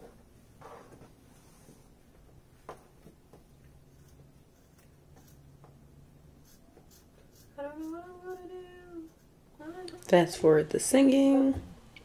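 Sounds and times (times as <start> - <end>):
woman singing softly: 7.6 - 10.1.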